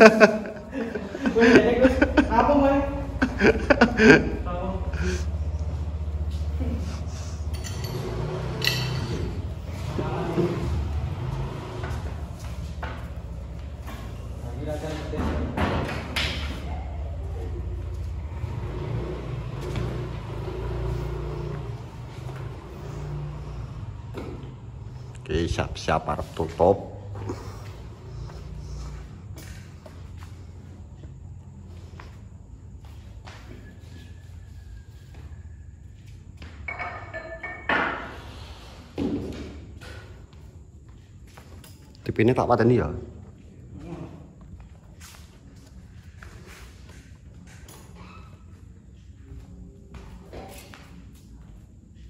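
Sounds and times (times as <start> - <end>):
low engine rumble: 0.0 - 15.2, 16.4 - 38.7.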